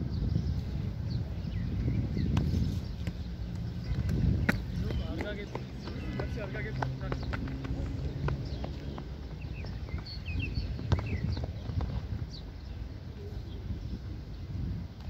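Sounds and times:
feet on hard surface: 3.9 - 12.1
ball being kicked: 10.8 - 12.0.

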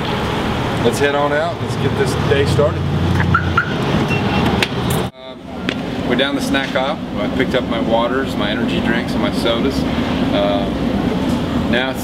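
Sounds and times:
truck engine rumble: 0.0 - 12.0
short beeps: 3.4 - 4.5.

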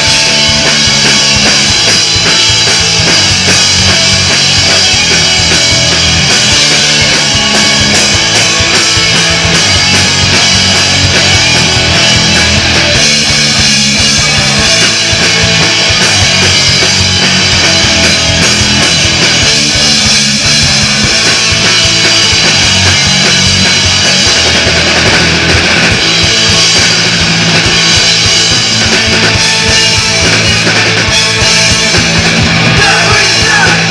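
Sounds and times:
drum kit: 0.0 - 33.9
electric guitars: 0.0 - 33.9.

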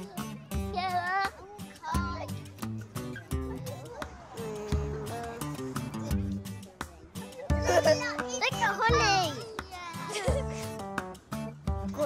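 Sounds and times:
children's excited voices and squeals: 0.0 - 10.6
light background music: 0.0 - 12.0.

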